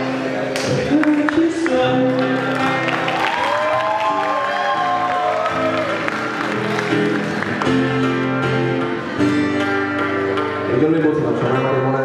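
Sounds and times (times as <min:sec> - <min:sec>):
acoustic guitars playing: 0:00.0 - 0:12.0
audience applause and cheering: 0:00.5 - 0:08.8.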